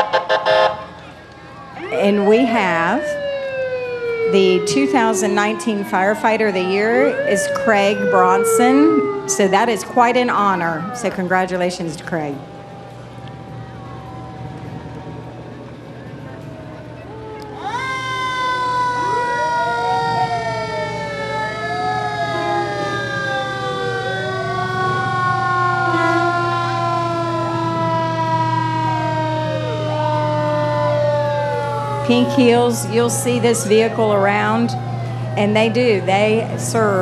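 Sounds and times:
fire truck siren rising and falling: 0.0 - 37.0
wailing siren: 0.0 - 37.0.

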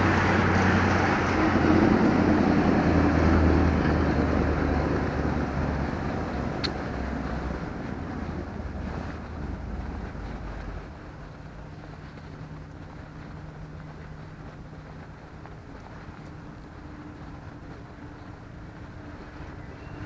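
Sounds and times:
bus passing by: 0.0 - 20.0.

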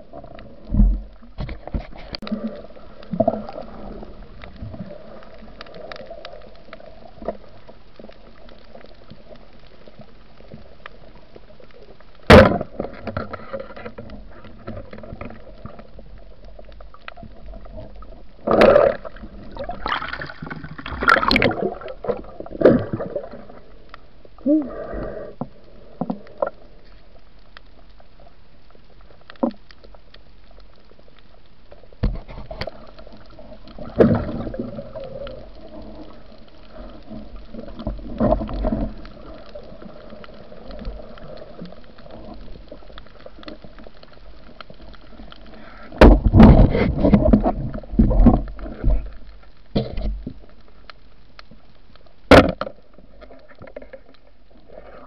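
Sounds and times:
bubbling scraping bursts: 17.6 - 23.7, 45.6 - 49.1.

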